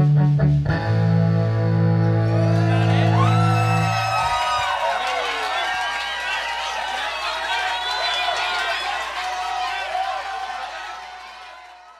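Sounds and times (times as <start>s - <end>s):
crowd whooping: 2.1s - 11.9s.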